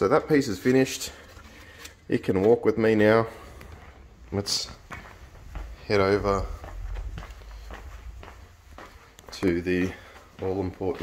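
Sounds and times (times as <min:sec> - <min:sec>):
footsteps on tiled floor: 0:03.3 - 0:11.0.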